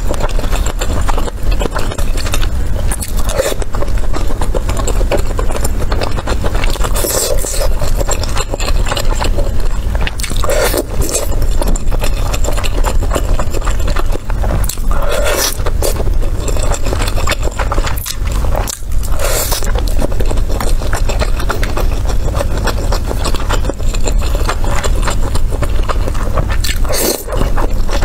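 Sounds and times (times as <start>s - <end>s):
chewing wet clicks and smacks: 0.0s - 28.0s.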